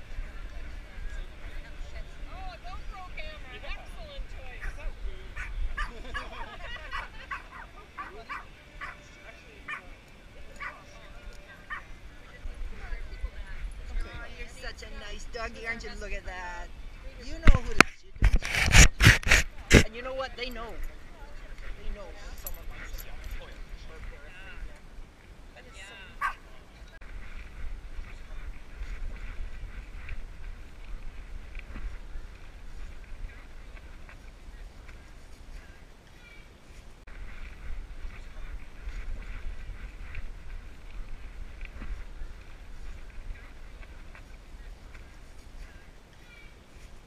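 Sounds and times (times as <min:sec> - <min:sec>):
dog yipping: 0:06.9 - 0:09.0.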